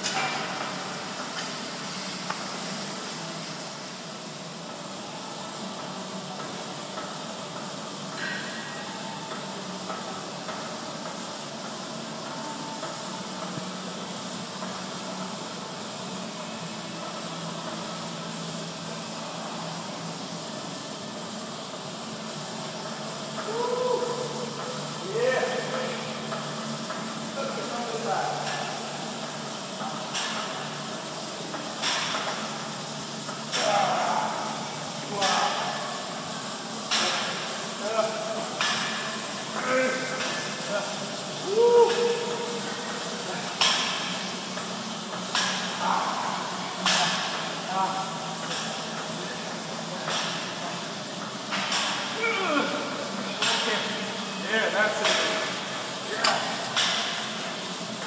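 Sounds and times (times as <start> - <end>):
room hum: 0.0 - 58.0
person grunting: 52.2 - 52.8.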